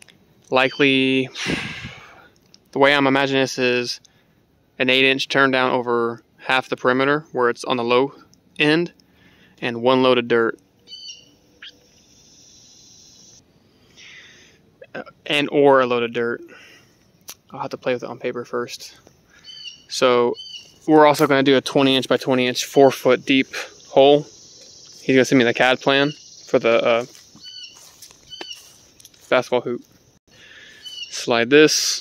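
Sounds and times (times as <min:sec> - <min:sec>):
insects buzzing: 0:10.7 - 0:14.6, 0:19.0 - 0:32.0
faint animal chirps: 0:27.4 - 0:28.8.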